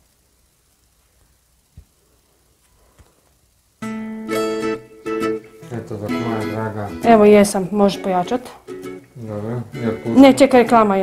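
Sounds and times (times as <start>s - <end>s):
guitar music with vocals: 3.8s - 11.0s.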